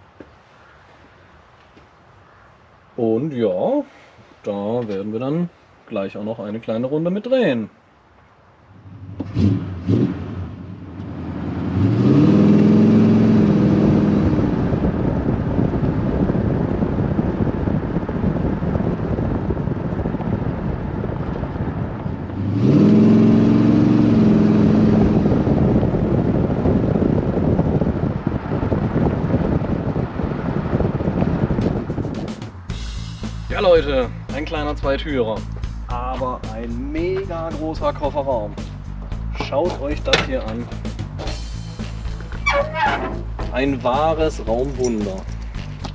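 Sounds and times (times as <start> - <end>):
car engine accelerating hard: 8.8 - 33.2.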